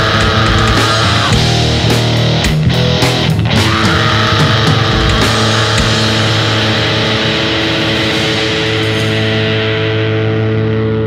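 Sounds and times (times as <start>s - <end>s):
drum hits: 0.0s - 10.2s
distorted guitar chord ringing: 0.0s - 11.0s.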